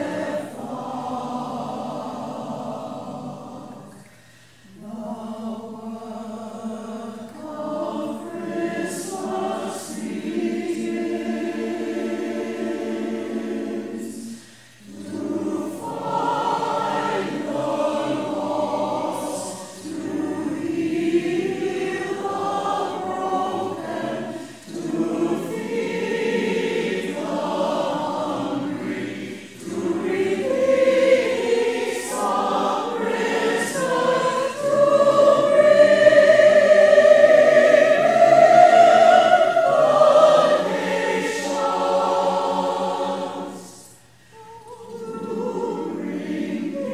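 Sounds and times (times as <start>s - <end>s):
church choir singing: 0.0s - 46.9s.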